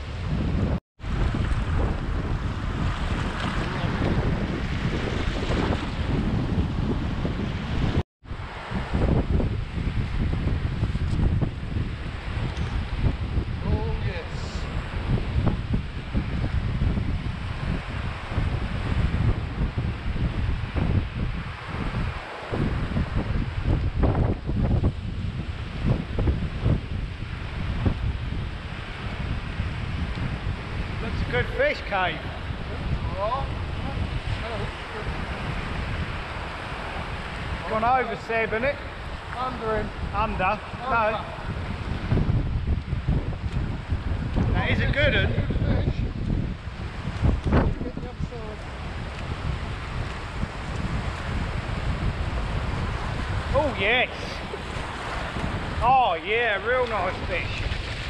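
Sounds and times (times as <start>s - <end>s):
surf breaking on beach: 0.0s - 58.0s
wind buffeting microphone: 0.0s - 58.0s.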